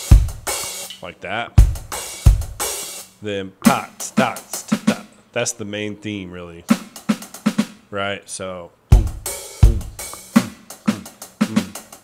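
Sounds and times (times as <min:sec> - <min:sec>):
hi-hat strokes: 0:00.0 - 0:01.1, 0:01.7 - 0:05.2, 0:09.0 - 0:12.0
bass drum kicks: 0:00.1 - 0:00.5, 0:01.6 - 0:02.6, 0:08.9 - 0:10.0
snare drum strokes: 0:09.0 - 0:12.0.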